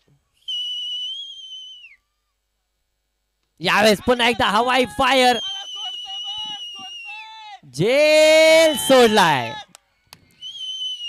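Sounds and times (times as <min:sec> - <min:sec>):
long high whistle: 0:00.4 - 0:02.2, 0:05.2 - 0:07.3, 0:10.4 - 0:11.0.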